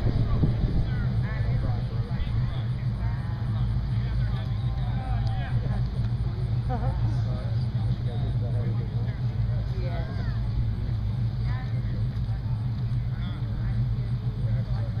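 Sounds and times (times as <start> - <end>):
car engine idling: 0.0 - 15.0
faint voices talking: 0.0 - 15.0.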